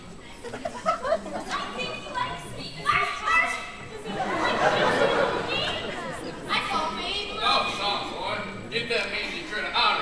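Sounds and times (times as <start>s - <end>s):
muffled voices in a hall: 0.0s - 10.0s.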